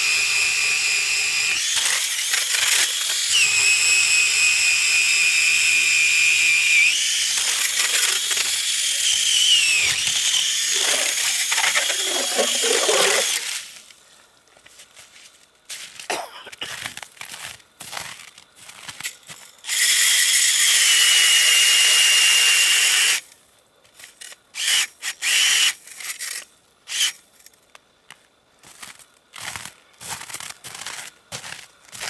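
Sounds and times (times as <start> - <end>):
drill motor whining: 0.0 - 13.5, 19.7 - 23.2, 24.6 - 25.8, 26.9 - 27.2
boots crunching on snow: 14.7 - 19.4, 28.7 - 32.0.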